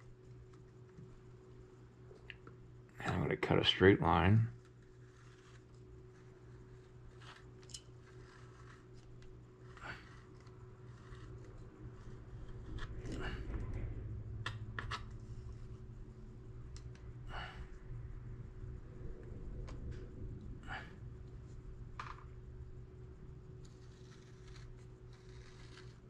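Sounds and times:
steady low hum: 0.0s - 26.0s
knife scraping along straightedge: 23.7s - 26.0s.

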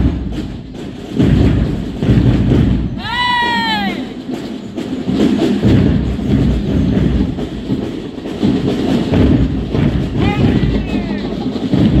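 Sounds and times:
marching drumline: 0.0s - 12.0s.

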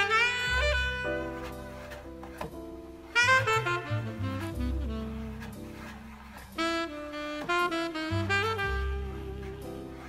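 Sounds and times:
double bass line: 0.1s - 10.0s.

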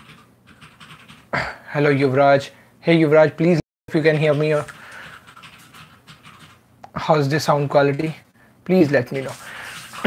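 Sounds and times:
man breathing faintly: 4.7s - 5.3s, 9.4s - 10.0s.

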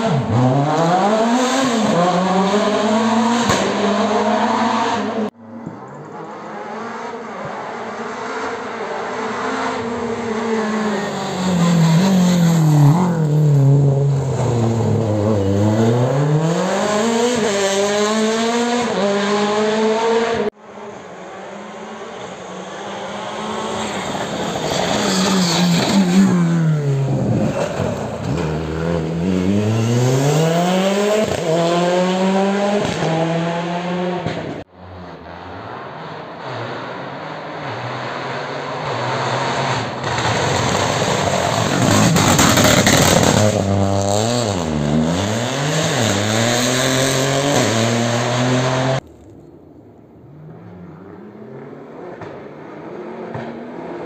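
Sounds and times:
rally car engines passing: 0.0s - 49.0s, 50.1s - 54.0s.

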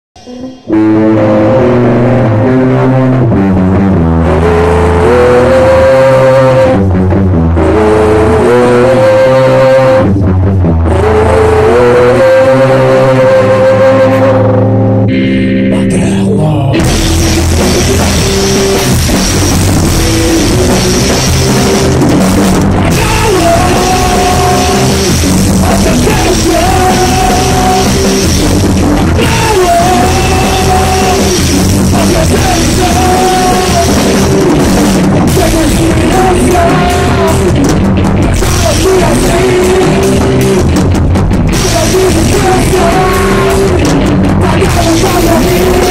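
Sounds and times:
bass guitar: 0.0s - 45.9s
distorted electric guitar riff: 0.0s - 45.9s
rock band playing loudly: 0.2s - 45.9s.

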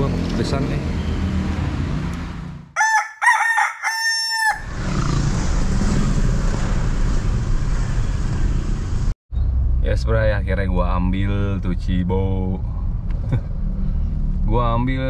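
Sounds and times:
car engine and road noise: 0.0s - 2.8s, 4.6s - 15.0s
rooster crowing: 2.8s - 4.8s.

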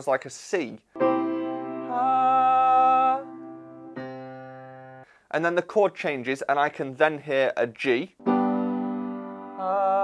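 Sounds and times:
low piano bass note: 1.0s - 5.0s.

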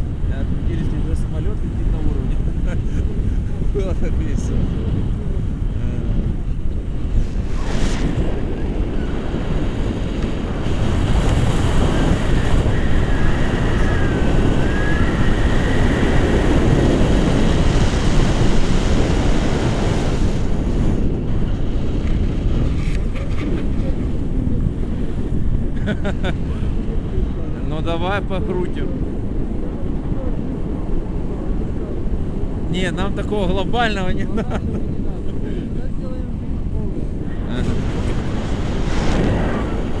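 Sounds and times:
wind rushing over microphone: 0.0s - 40.0s.

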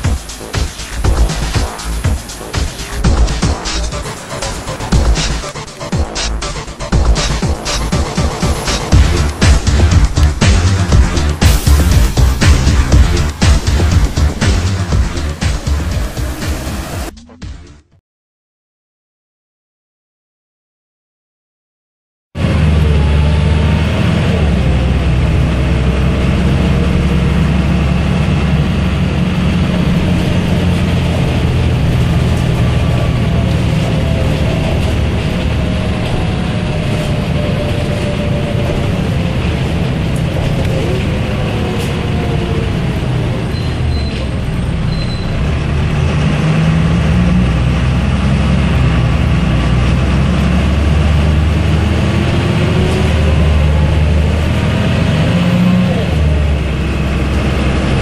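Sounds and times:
bus engine drone with whine: 0.0s - 17.8s, 22.4s - 58.0s.

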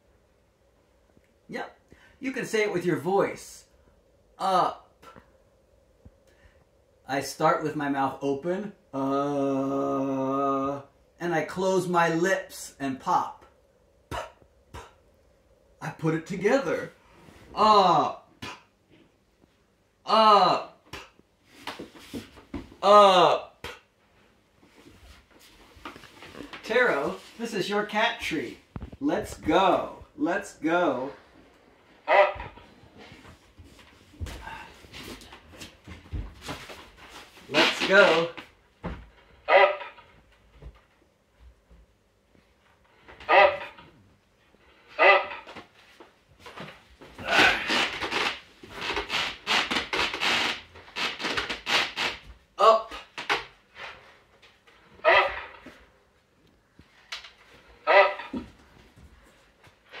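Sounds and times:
short pitched vocal sounds: 47.2s - 47.9s.

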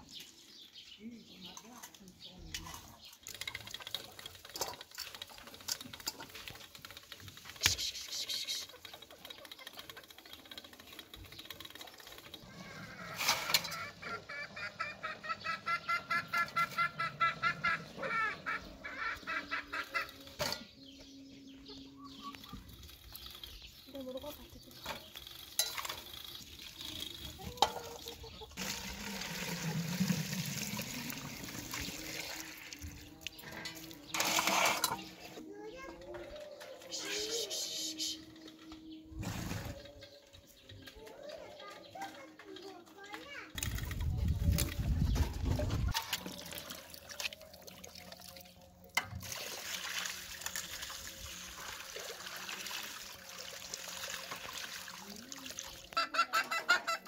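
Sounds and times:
hens clucking: 2.7s - 21.0s, 23.9s - 38.9s, 55.9s - 57.0s.

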